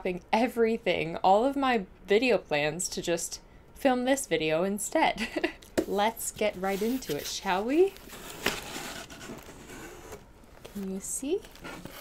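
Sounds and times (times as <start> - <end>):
cardboard scraping and rustling: 5.9 - 12.0.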